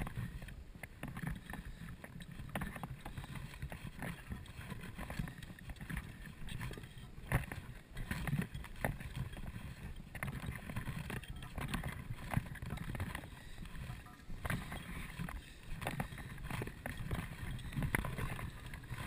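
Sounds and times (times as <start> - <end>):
rustling: 0.0 - 19.0.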